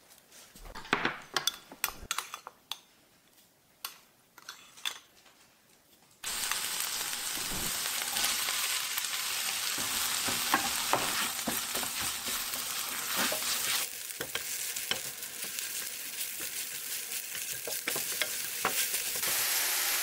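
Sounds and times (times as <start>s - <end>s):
food sizzling in hot oil: 6.2s - 20.0s
spatula scraping pan: 9.8s - 15.6s.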